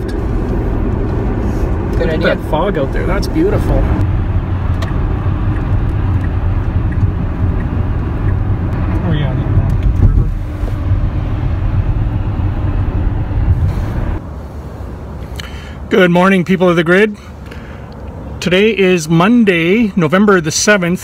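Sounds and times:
outdoor air: 0:00.0 - 0:21.0
road and tyre noise in car: 0:00.0 - 0:21.0.

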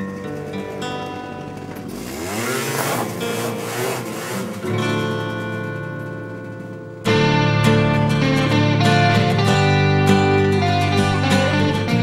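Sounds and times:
scooter engine revving: 0:00.0 - 0:07.4.

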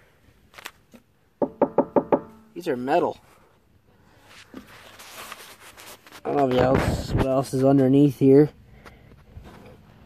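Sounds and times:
knocking on hollow barrel: 0:01.4 - 0:02.5.

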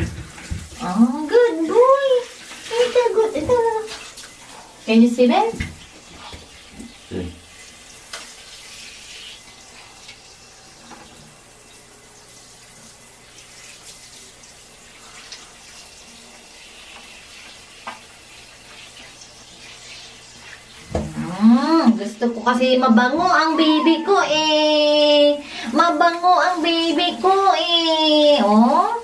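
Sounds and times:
shower spray hissing: 0:00.0 - 0:22.6.

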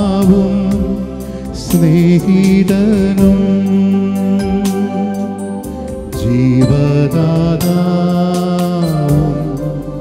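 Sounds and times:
programmed drum beat: 0:00.0 - 0:09.8
electronic keyboard chords: 0:00.0 - 0:10.0.

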